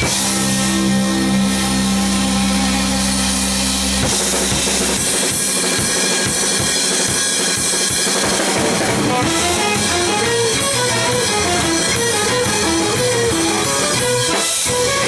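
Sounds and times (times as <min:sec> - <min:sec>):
busy drumming: 0:00.0 - 0:15.0
jazz-rock band music: 0:00.0 - 0:15.0.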